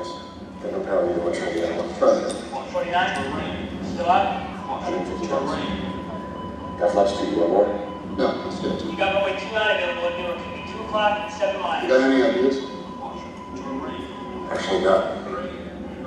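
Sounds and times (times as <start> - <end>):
men talking over loudspeakers: 0.0 - 5.9, 6.7 - 16.0.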